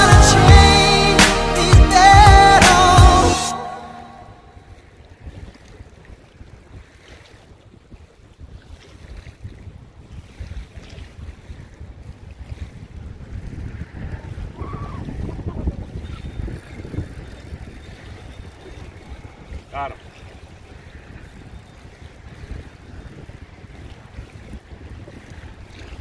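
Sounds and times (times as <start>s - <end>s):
water lapping against shore: 2.0s - 26.0s
wind buffeting microphone: 4.4s - 26.0s.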